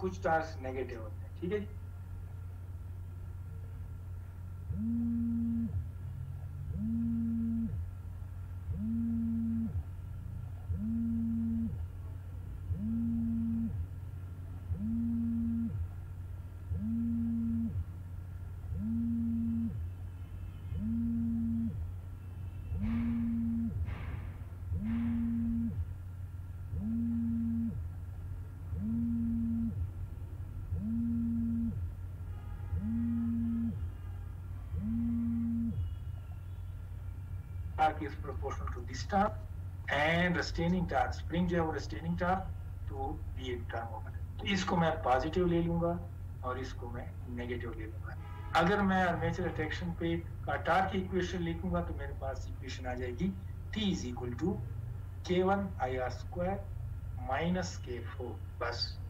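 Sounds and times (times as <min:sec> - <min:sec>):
steady low hum: 0:00.0 - 0:59.0
low tone beeping: 0:04.6 - 0:28.0, 0:28.6 - 0:40.1.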